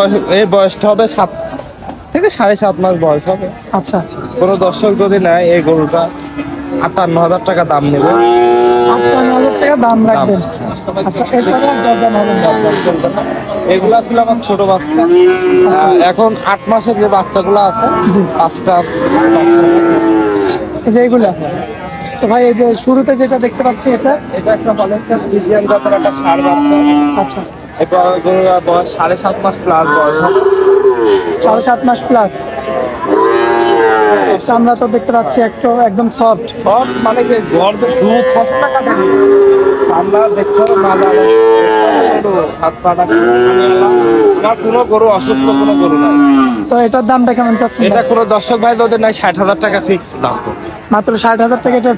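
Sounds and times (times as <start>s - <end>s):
calf mooing: 7.9s - 9.9s, 11.2s - 13.3s, 14.7s - 16.1s, 18.8s - 20.6s, 24.6s - 27.5s, 29.7s - 34.5s, 36.7s - 42.3s, 43.0s - 46.7s.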